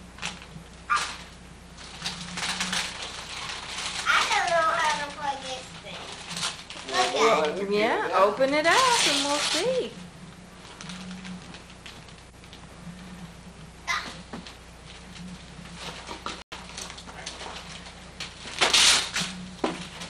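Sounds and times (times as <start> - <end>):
steady low hum: 0.0 - 20.0
wrapping paper rustling and tearing: 0.2 - 7.6, 8.3 - 10.0, 10.6 - 12.6, 14.9 - 20.0.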